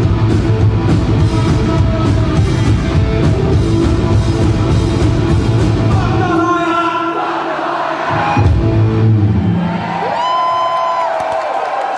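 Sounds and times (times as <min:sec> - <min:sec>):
crowd cheering: 0:06.4 - 0:11.9.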